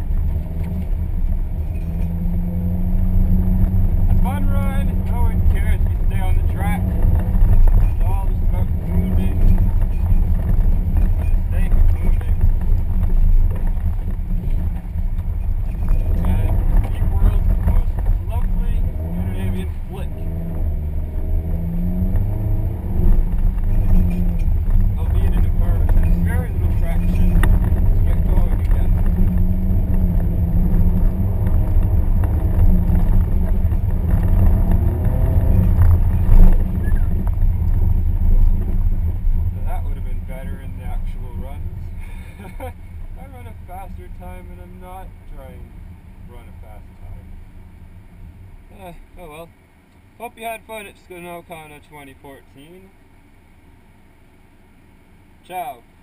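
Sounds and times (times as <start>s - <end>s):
low rumble: 0.0s - 49.0s
car engine revving: 0.0s - 53.0s.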